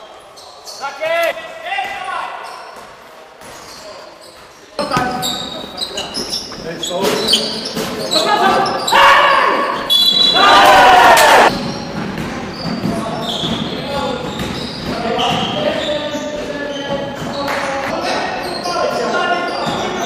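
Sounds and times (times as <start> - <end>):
players shouting in echoing hall: 7.2 - 11.7
basketball bouncing on gym floor: 11.5 - 17.5.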